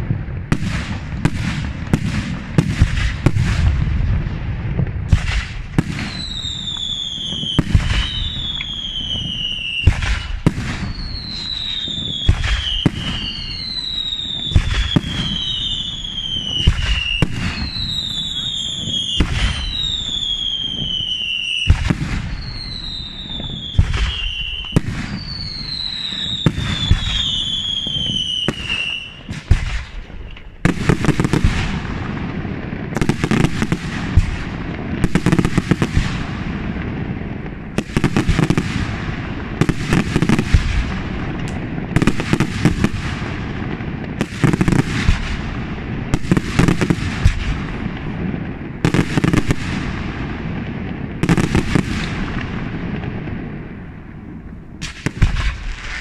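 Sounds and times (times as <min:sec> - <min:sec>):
firework crackling reports: 0:00.0 - 0:56.0
fireworks bangs: 0:00.0 - 0:56.0
falling firework whistles: 0:05.0 - 0:32.2, 0:51.2 - 0:53.2, 0:54.8 - 0:56.0.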